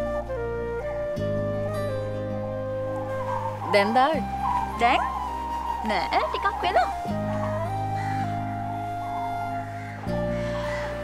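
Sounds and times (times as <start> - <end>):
held chord score: 0.0 - 11.0
high sliding calls: 3.0 - 11.0.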